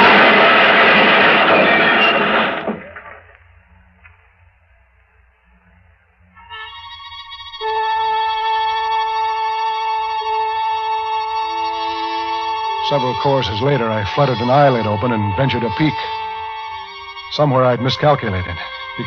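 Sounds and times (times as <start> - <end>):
car skidding and crashing: 0.0 - 3.3
low musical note: 5.4 - 19.0
sustained musical chord: 5.4 - 19.0.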